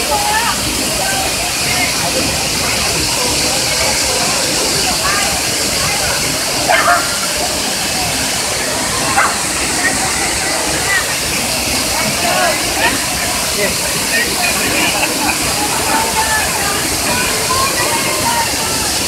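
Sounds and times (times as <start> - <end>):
waterfall plunging into pool: 0.0 - 19.0.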